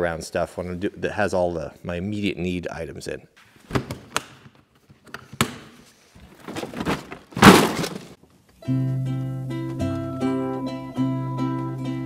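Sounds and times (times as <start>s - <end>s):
plastic bin clattering down: 5.4s - 8.2s
rustling: 5.8s - 8.2s.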